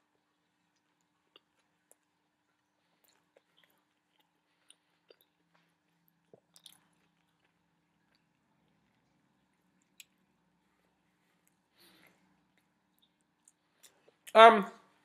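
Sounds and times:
faint chewing: 0:00.0 - 0:14.3
wet mouth clicks and smacks: 0:06.1 - 0:08.3, 0:09.8 - 0:10.2.

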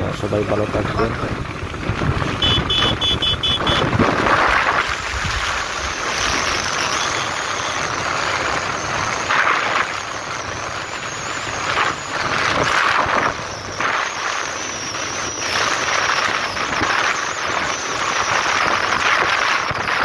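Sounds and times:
road noise: 0:00.0 - 0:20.0
wind rushing over microphone: 0:00.0 - 0:20.0.

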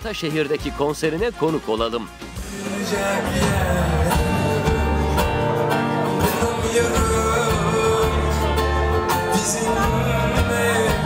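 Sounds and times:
live pop band playing: 0:00.0 - 0:11.0
man singing into a microphone: 0:02.4 - 0:05.4, 0:06.2 - 0:11.0.

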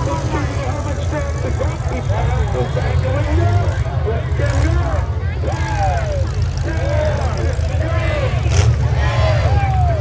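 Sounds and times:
truck engines rumbling: 0:00.0 - 0:10.0
spectators shouting: 0:03.2 - 0:10.0.

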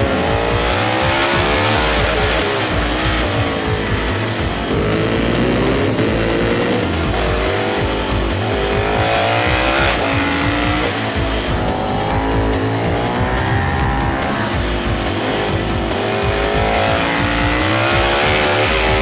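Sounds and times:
motorcycle engine revving hard: 0:00.0 - 0:19.0
music playing: 0:00.0 - 0:19.0.

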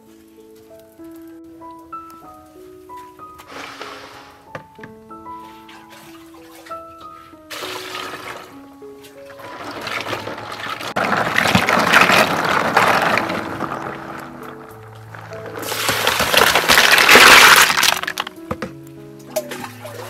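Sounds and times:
background music: 0:00.0 - 0:20.0
water sloshing and pouring: 0:03.4 - 0:04.5, 0:05.3 - 0:18.7, 0:19.3 - 0:20.0.

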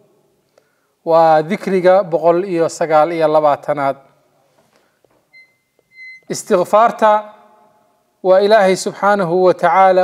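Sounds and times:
high beep-like tone: 0:05.3 - 0:06.3.

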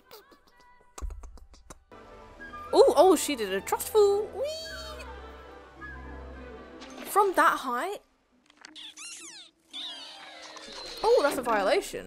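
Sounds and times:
cartoon animal squeaking: 0:08.6 - 0:11.3.

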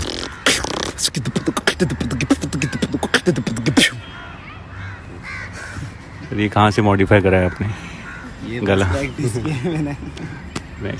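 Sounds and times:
crow cawing: 0:00.0 - 0:06.3, 0:07.2 - 0:09.0.

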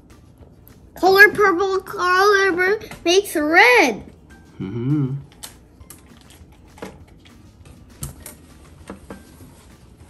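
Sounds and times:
person humming: 0:04.5 - 0:05.3.

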